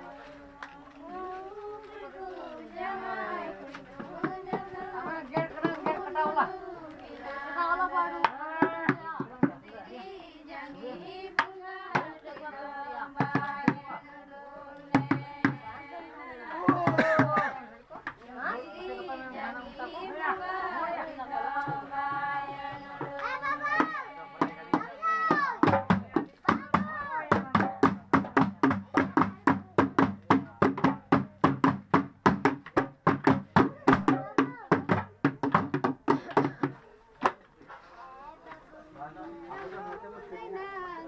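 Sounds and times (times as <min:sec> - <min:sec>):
group singing: 0:00.0 - 0:28.8
plastic buckets beaten as drums: 0:14.9 - 0:15.7, 0:16.6 - 0:17.6, 0:23.0 - 0:37.4.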